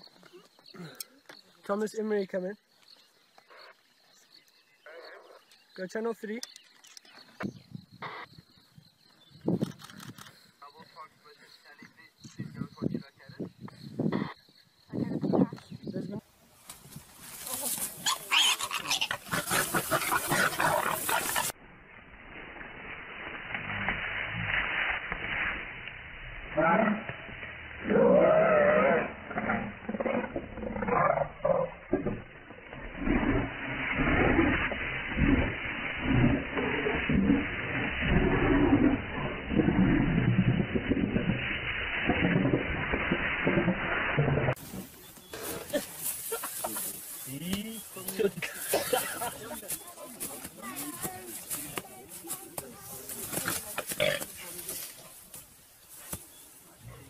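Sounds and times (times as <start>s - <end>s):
pig squealing: 18.0s - 21.6s
leopard growling: 18.2s - 21.6s, 27.7s - 44.7s.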